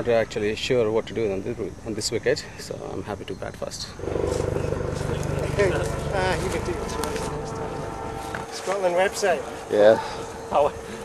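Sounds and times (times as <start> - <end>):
steady low rumble: 3.9 - 8.6.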